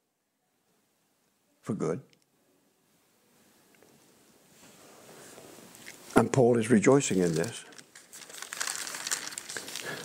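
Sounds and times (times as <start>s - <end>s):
crackly rustling and crinkling: 4.5s - 10.0s.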